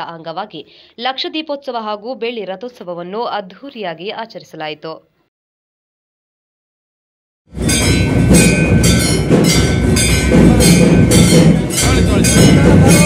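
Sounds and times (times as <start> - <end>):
drums beating: 7.5 - 13.0
temple bells ringing: 7.6 - 13.0
voices: 10.4 - 13.0.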